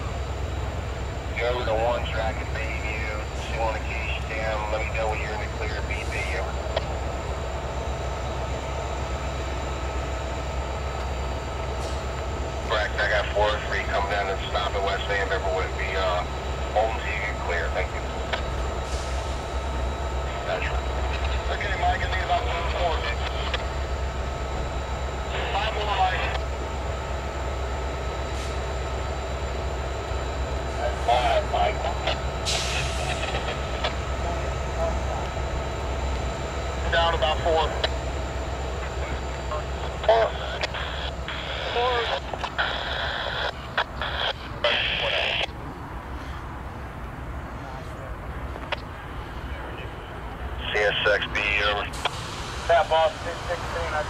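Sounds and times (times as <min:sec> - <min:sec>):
diesel locomotive idling: 0:00.0 - 0:54.0
faint steady hum: 0:00.0 - 0:54.0.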